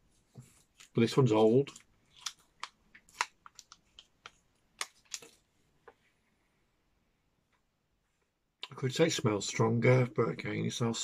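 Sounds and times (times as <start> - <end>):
wrapper crinkling: 1.6 - 5.4.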